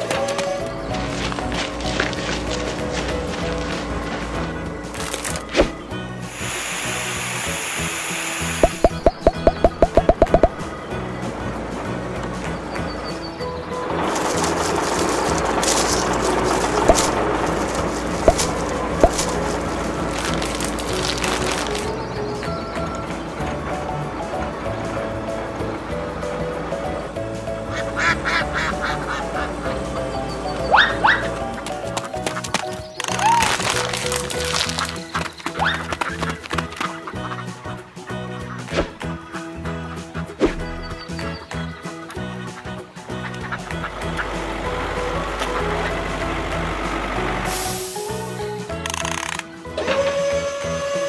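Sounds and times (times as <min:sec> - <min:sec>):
background music: 0:00.0 - 0:51.0
short rising calls: 0:05.0 - 0:10.7
hose water spray hiss: 0:06.2 - 0:09.2, 0:47.5 - 0:48.4
cartoon rising pops: 0:08.4 - 0:10.6
duck quacking: 0:27.7 - 0:29.9.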